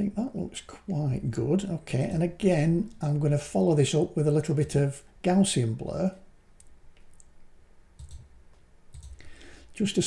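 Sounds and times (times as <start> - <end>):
computer mouse clicks: 8.0 - 9.2.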